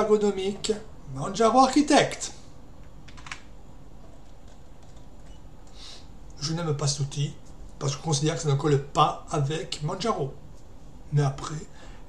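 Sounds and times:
low room noise: 0.0s - 12.0s
computer keys clicking: 2.8s - 3.5s, 4.1s - 5.8s.

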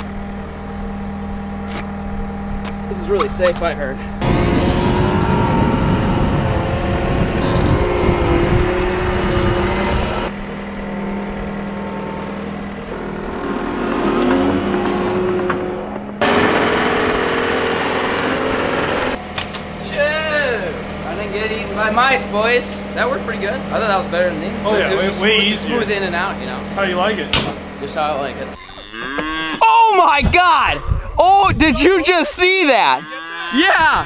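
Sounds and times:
diesel engine running: 0.0s - 19.3s
rattling rumble: 4.0s - 19.2s.

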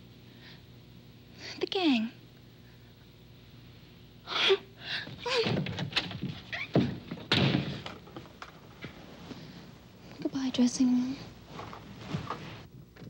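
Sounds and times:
knocks and thumps of handling: 5.1s - 9.0s
door being shut: 5.4s - 7.9s.

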